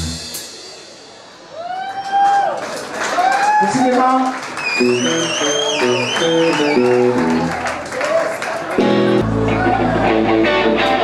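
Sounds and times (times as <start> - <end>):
bass guitar: 0.0 - 0.5, 4.8 - 7.8, 8.7 - 11.0
electric guitar: 4.7 - 7.8, 8.7 - 11.0.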